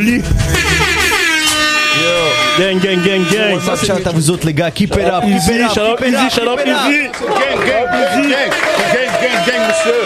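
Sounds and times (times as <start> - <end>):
hip-hop beat: 0.0 - 5.0
air horn sound effect: 0.4 - 4.2.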